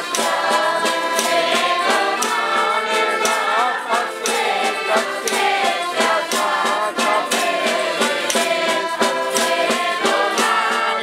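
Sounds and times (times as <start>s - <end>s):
accordions and melodica: 0.0s - 11.0s
snare drum and wooden clappers: 0.0s - 11.0s
young voices singing folk song: 0.0s - 11.0s.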